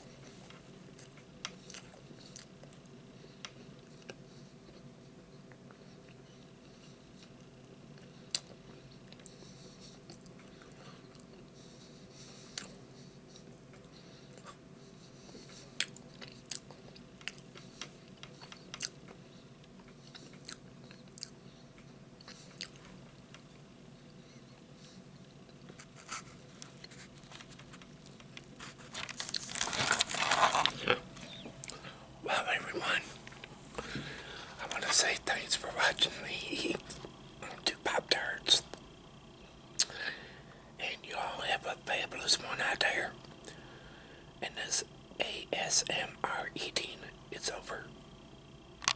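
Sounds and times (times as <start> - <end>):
chewing crisp pastry: 0.3 - 4.9, 15.3 - 31.9
man whispering: 32.2 - 33.2, 34.5 - 38.8, 40.8 - 43.2, 44.4 - 48.0.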